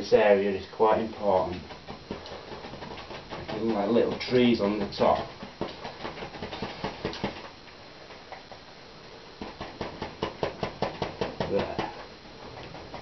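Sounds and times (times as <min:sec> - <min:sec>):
paintbrush tapping on canvas: 0:09.4 - 0:12.0.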